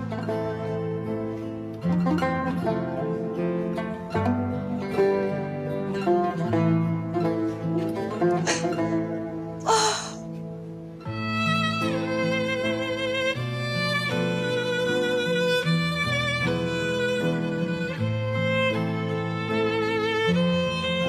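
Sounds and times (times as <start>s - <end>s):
gentle plucked string music: 0.0s - 21.0s.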